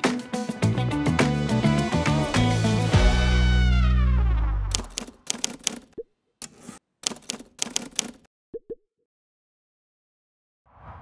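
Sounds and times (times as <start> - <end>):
rapid clicks: 4.7 - 6.0, 7.0 - 8.3.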